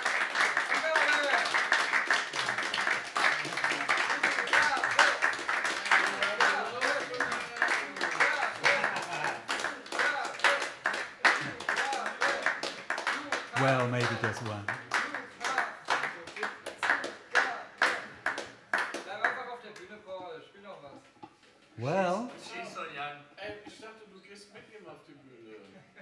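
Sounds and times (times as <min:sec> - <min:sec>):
audience applauding: 0:00.0 - 0:19.4
voices among clapping: 0:00.0 - 0:20.0.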